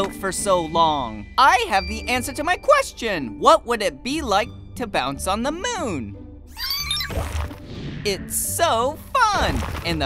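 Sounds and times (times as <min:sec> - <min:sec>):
soft background music: 0:00.0 - 0:10.0
high-pitched cartoon sound: 0:06.5 - 0:07.2.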